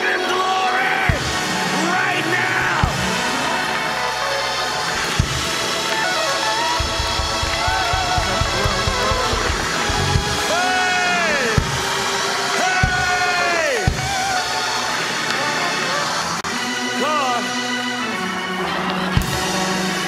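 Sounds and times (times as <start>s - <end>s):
church band playing praise music: 0.0s - 20.0s
congregation praising: 0.0s - 20.0s
driving drum beat: 1.0s - 3.4s, 5.0s - 14.5s.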